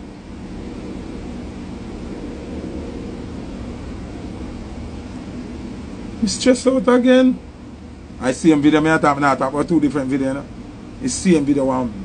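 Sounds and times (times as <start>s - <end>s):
low rumble of background noise: 0.0s - 12.0s.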